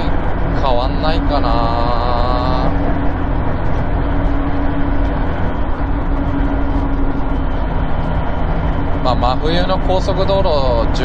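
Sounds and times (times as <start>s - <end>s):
car engine drone: 0.0s - 11.0s
road and tyre noise: 0.0s - 11.0s.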